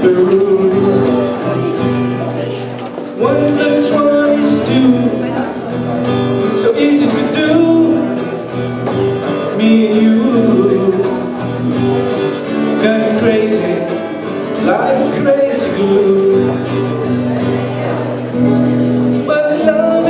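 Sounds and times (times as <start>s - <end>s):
acoustic guitar: 0.0s - 20.0s
man singing: 0.0s - 20.0s.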